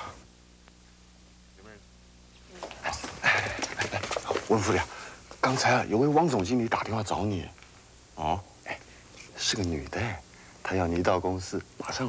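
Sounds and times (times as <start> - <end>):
hurried footsteps on hard floor: 2.5 - 5.4.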